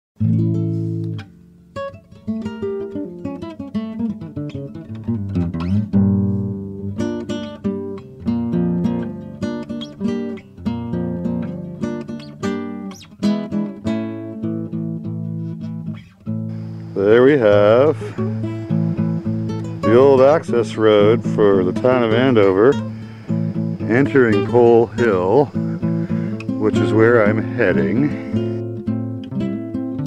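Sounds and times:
acoustic guitar music: 0:00.2 - 0:30.0.

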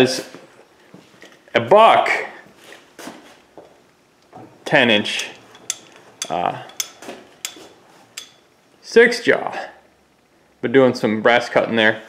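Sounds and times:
small metal parts clinking: 0:05.0 - 0:08.5.

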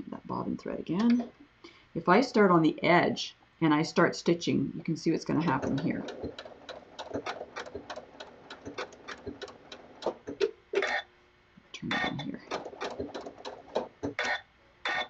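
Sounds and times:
sewing machine stitching: 0:05.3 - 0:11.0, 0:11.9 - 0:15.0.

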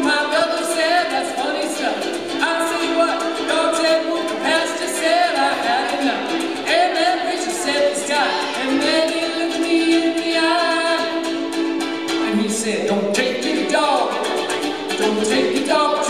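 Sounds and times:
strummed ukulele: 0:00.0 - 0:16.0
voices singing: 0:00.0 - 0:16.0.

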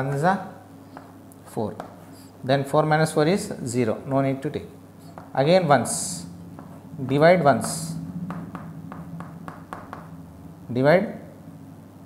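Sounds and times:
low room hum: 0:00.0 - 0:12.0
chalk tapping on chalkboard: 0:00.9 - 0:02.2, 0:05.0 - 0:05.4, 0:06.5 - 0:10.1.

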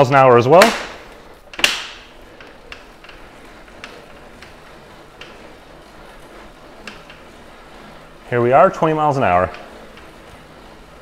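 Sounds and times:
bike trainer whirring: 0:00.0 - 0:11.0.

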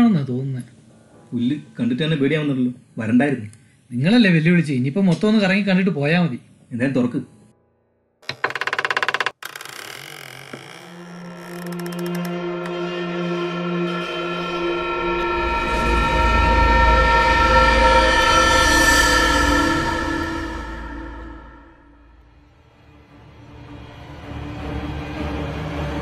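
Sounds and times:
wooden door creaking open: 0:08.2 - 0:12.8
suspense music drone: 0:11.1 - 0:22.6.

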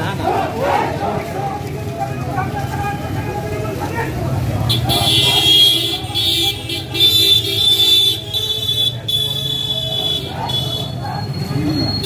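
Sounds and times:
street crowd voices: 0:00.0 - 0:12.0.

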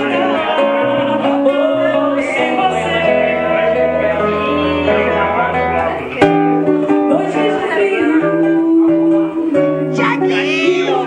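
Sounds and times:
acoustic guitar: 0:00.0 - 0:11.0
woman singing into microphone: 0:07.0 - 0:11.0.

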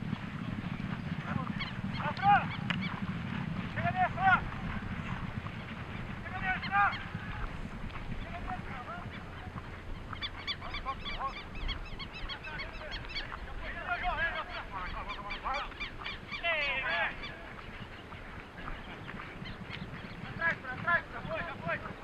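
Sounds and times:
flock of birds calling: 0:00.0 - 0:22.0.

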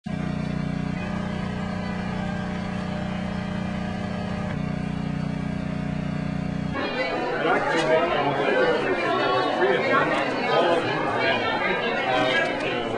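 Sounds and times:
low mechanical hum: 0:00.1 - 0:12.9.

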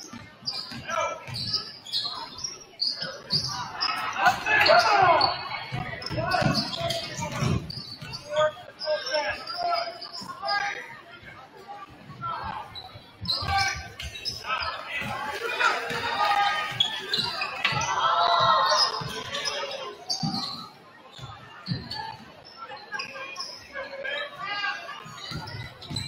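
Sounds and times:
voices calling out: 0:00.0 - 0:26.0.

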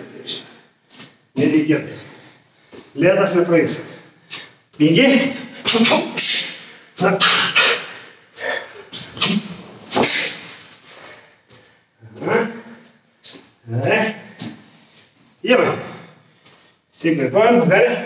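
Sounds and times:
forceful grunts and exhalations: 0:03.7 - 0:13.0.

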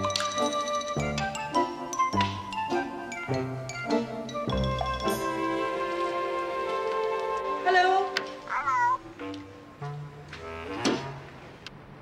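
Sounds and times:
orchestral film music: 0:00.0 - 0:11.6
meow-like animal cry: 0:08.5 - 0:09.1.

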